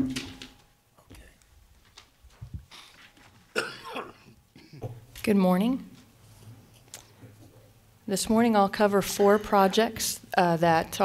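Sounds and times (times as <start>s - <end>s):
person coughing: 3.5s - 5.0s.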